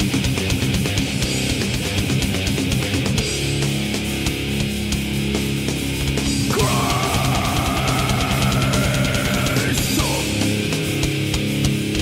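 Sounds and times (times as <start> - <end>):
distorted electric guitars: 0.0 - 12.0
fast dense drumming: 0.0 - 12.0.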